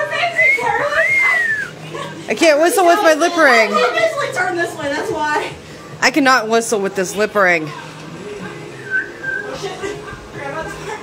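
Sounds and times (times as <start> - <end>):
background music: 0.0 - 11.0
person whistling short notes: 8.8 - 9.5.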